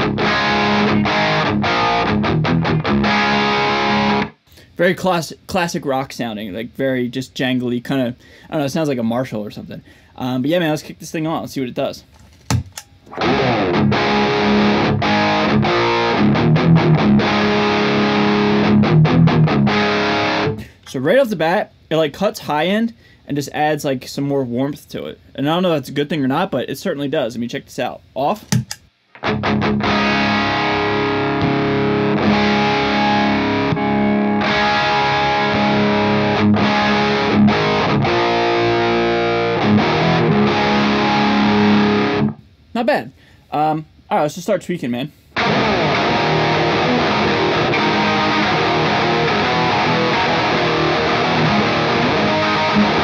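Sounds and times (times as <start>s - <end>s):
overdriven electric guitar riffs: 0.0s - 4.4s, 13.1s - 20.8s, 29.1s - 42.4s, 45.4s - 53.0s
pedal footswitch click: 28.5s - 28.8s.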